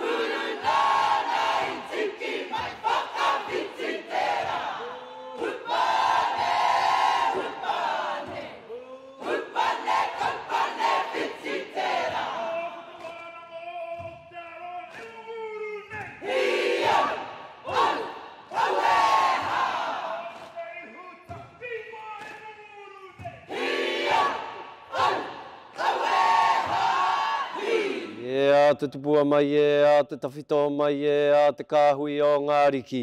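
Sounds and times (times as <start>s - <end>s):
group chanting in unison: 0.0s - 13.1s, 15.9s - 20.6s, 23.1s - 28.3s.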